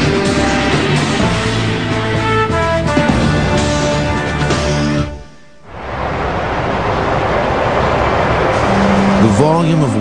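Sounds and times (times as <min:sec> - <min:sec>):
waterfall roaring: 0:05.7 - 0:10.0.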